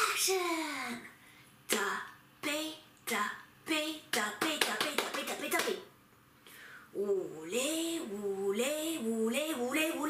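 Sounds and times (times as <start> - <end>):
woman chanting: 1.7 - 5.9, 6.9 - 10.0
hand claps: 4.2 - 5.8.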